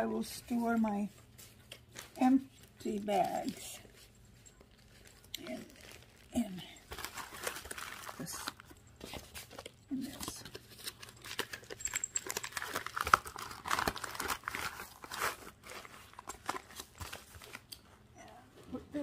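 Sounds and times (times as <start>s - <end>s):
paper and plastic crinkling: 0.0s - 18.1s.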